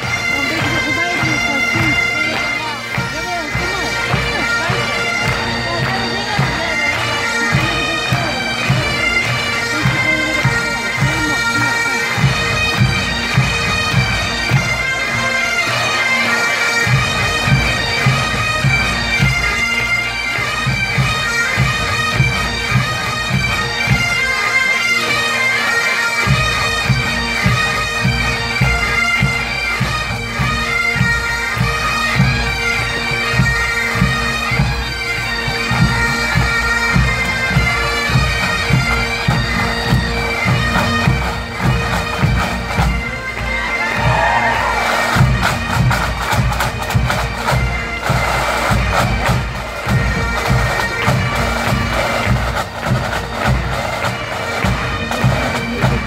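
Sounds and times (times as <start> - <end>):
marching drums beating: 0.0 - 15.8, 26.2 - 56.0
bagpipes playing a tune: 0.0 - 56.0.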